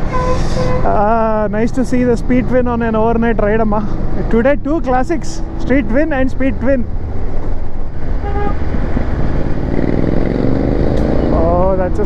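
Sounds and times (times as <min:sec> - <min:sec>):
wind rumble: 0:00.0 - 0:12.0
short horn beep: 0:00.1 - 0:00.9, 0:08.2 - 0:08.6
motorcycle engine accelerating: 0:06.8 - 0:12.0.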